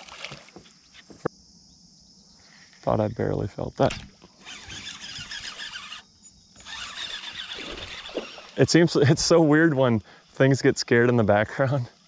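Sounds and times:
fishing reel whirring: 3.9 - 10.0.

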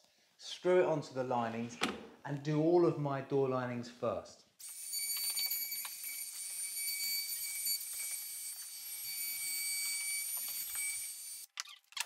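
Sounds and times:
power tool whining: 4.6 - 11.5.

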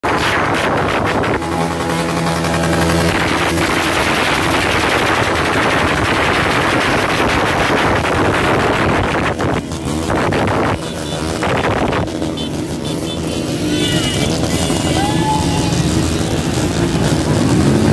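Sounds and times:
exhaust crackling and popping: 0.0 - 17.9
motorcycles revving past: 0.1 - 17.9
steady-pitched engine note: 0.2 - 17.9.

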